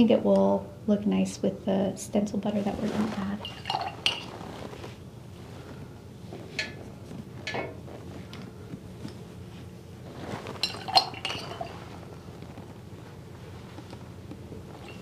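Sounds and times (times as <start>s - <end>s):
brushes clinking on palettes: 10.6s - 11.9s.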